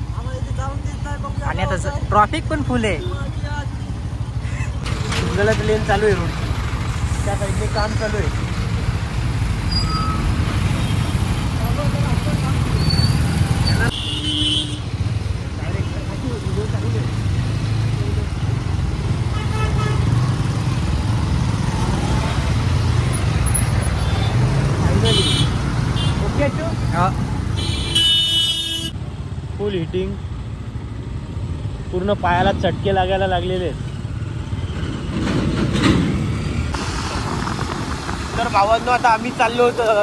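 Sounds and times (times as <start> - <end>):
traffic engines running: 0.0 - 40.0
vehicle horn toots: 13.7 - 14.9, 25.0 - 26.2, 27.6 - 28.9.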